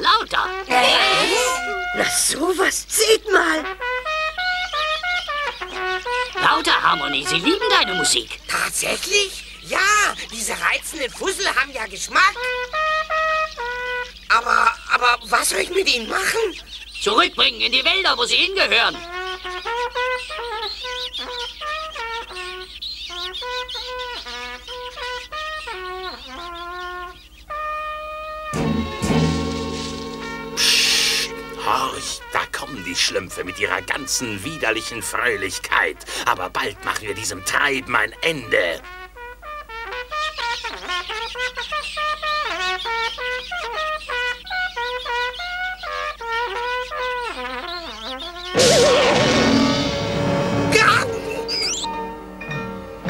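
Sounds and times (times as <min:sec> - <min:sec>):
cartoon trumpet playing jaunty tune: 0:00.4 - 0:02.4, 0:03.3 - 0:08.3, 0:12.3 - 0:14.2, 0:24.2 - 0:26.6, 0:27.5 - 0:34.9, 0:36.8 - 0:53.0
brief noisy burst: 0:28.6 - 0:31.7.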